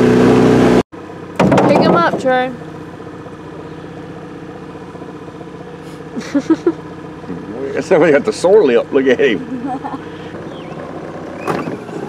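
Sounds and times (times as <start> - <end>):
outboard motor idling: 0.0 - 12.0.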